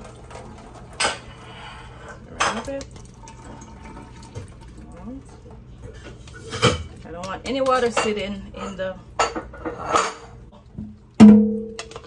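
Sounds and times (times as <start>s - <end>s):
water trickling into a metal sink: 0.0s - 5.7s.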